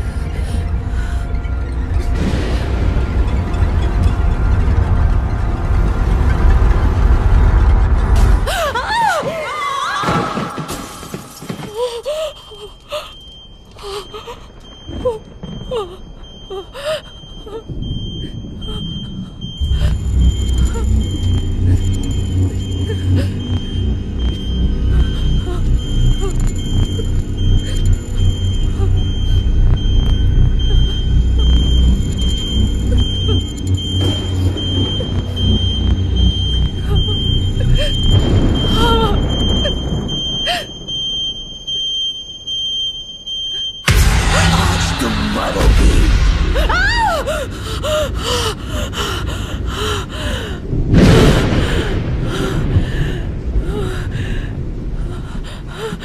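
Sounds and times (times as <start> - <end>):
low rumbling drone: 0.0 - 8.8, 14.5 - 41.1, 43.9 - 56.0.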